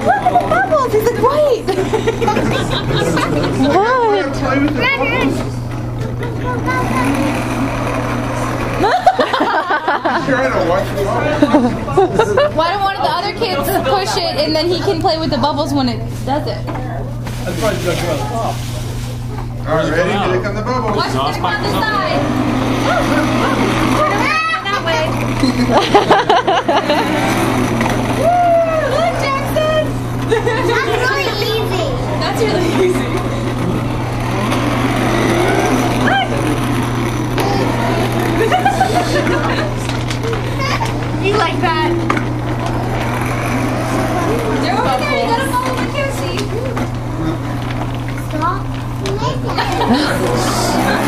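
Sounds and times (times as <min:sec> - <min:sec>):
young children playing: 0:00.0 - 0:15.9, 0:20.9 - 0:51.0
steady low hum: 0:00.0 - 0:51.0.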